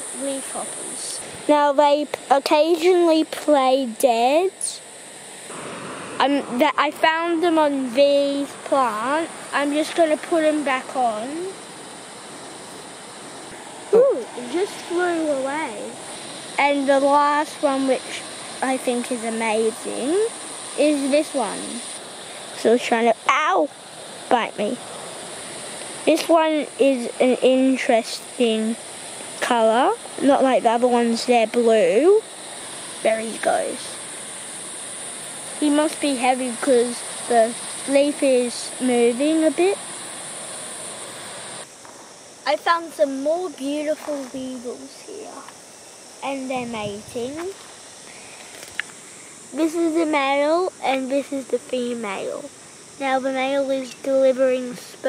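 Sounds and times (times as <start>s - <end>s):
distant ocean surf: 0.0s - 55.0s
high hiss: 0.0s - 55.0s
wind: 0.0s - 55.0s.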